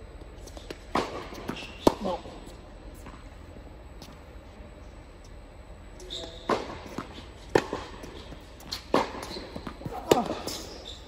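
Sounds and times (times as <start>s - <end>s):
ball bouncing on hard court: 0.6s - 2.2s, 6.1s - 11.0s
tennis ball hit by racket: 6.5s - 10.6s.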